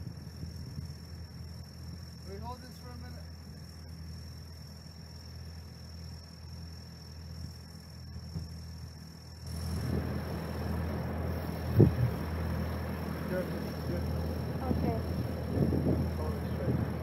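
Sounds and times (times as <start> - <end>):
tractor engine running: 0.0 - 17.0.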